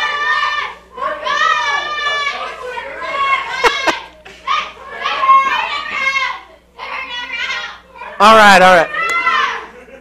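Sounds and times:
people calling out: 0.0 - 9.8.

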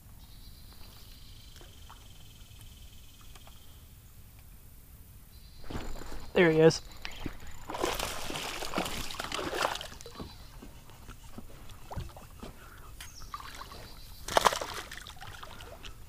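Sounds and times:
water sloshing: 5.6 - 16.0
fish splashing at water surface: 7.1 - 10.3, 13.4 - 15.8.

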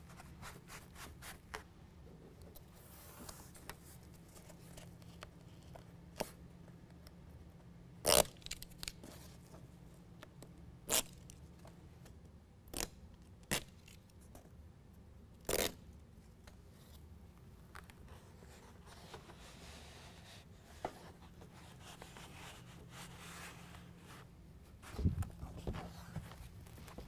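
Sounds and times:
velcro strips tearing apart: 8.0 - 9.0, 10.9 - 11.3, 15.4 - 15.8.

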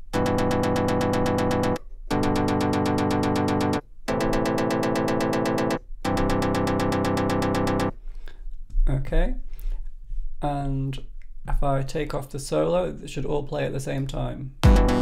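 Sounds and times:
synthesizer chords in fast pulses: 0.0 - 8.0, 14.6 - 15.0.

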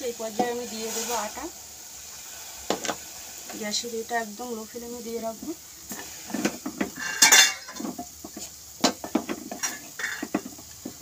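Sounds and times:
wooden spatula knocking steel pot: 6.4 - 11.0.

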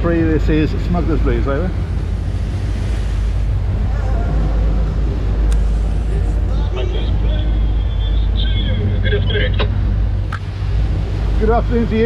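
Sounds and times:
boat engine rumble: 0.0 - 12.0
water along hull: 0.0 - 12.0
wind buffeting microphone: 0.0 - 12.0.

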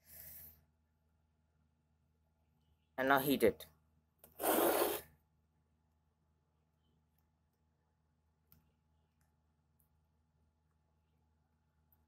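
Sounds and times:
glass flask scraping: 4.3 - 5.1.

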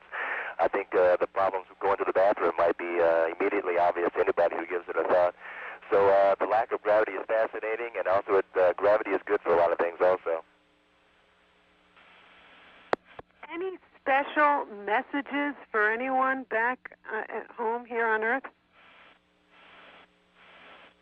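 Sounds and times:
faint steady hum: 0.0 - 21.0
man speaking over radio: 0.3 - 10.4.

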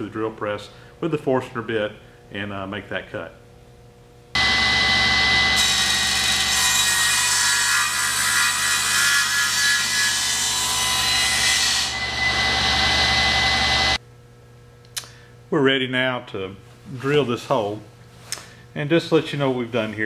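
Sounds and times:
table saw cutting wood: 4.4 - 14.0.

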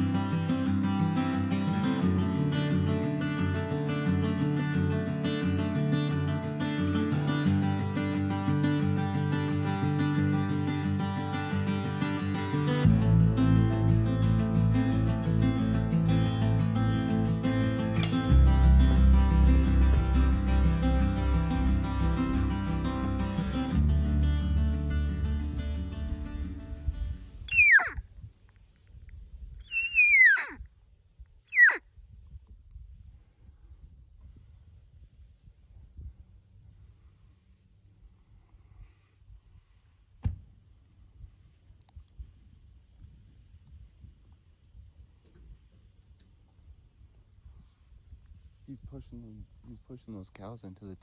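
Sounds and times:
acoustic guitar music: 0.0 - 27.8
elk whistled calls: 27.5 - 28.0, 29.6 - 30.6, 31.5 - 31.8.

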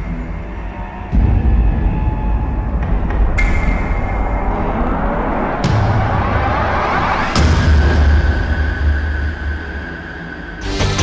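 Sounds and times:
dramatic theme music: 0.0 - 11.0
deep rumble: 1.1 - 10.6.

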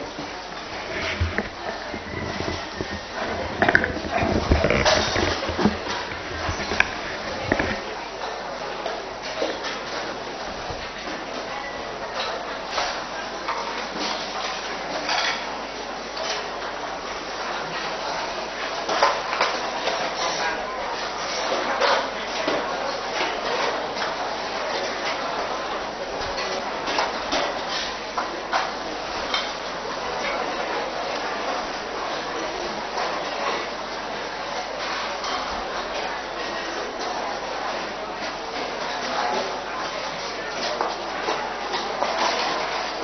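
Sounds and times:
murmur of many voices: 0.0 - 43.0.

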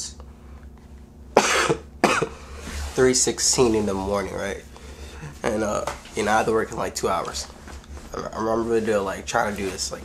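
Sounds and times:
man coughing: 1.4 - 2.5.

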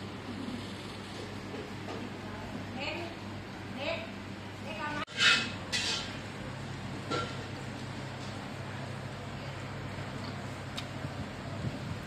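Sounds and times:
slurping noodles: 0.0 - 1.6
steady low hum: 0.0 - 12.0.

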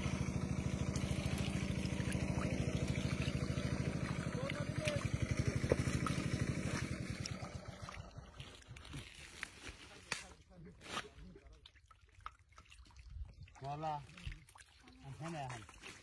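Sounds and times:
small engine running: 0.0 - 8.8.

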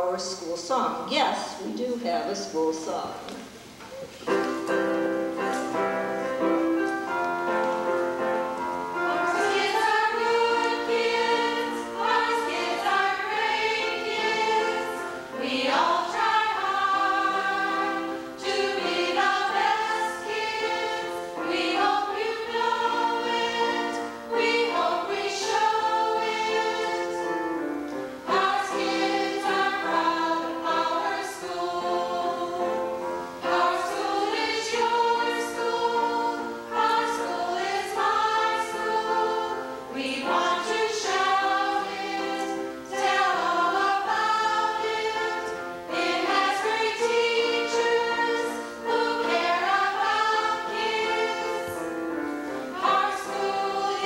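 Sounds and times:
women's choir singing: 4.3 - 54.0.

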